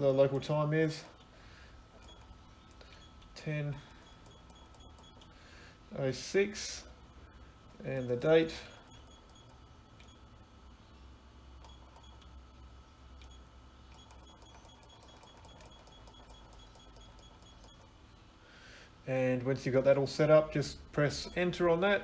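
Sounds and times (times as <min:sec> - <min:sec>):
faint room hum: 0:00.0 - 0:22.0.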